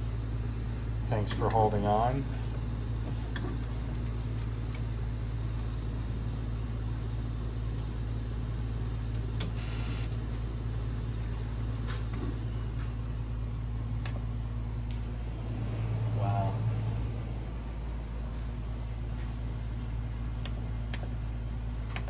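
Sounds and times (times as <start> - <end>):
printer humming: 0.0 - 22.0
printer whir: 0.0 - 22.0.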